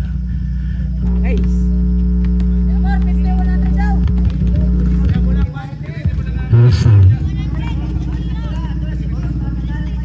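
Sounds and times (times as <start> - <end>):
steady low hum: 0.0 - 10.0
background chatter: 1.6 - 10.0.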